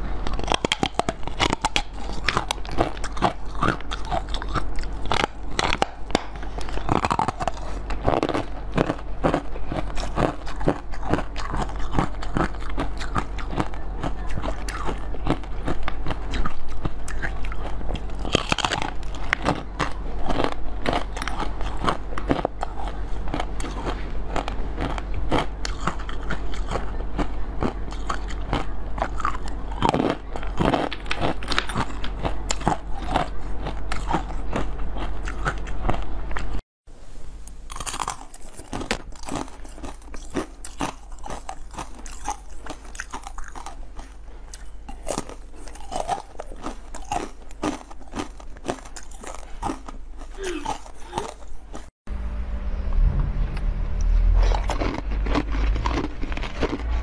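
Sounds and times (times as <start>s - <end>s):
crunchy chewing: 0.0s - 36.6s, 37.5s - 51.9s, 54.4s - 57.0s.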